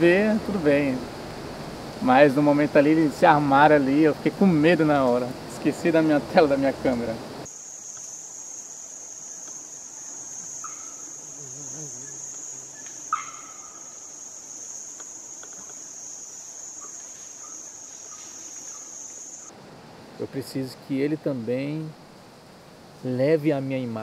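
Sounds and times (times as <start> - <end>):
forest insects droning: 0.0 - 24.0.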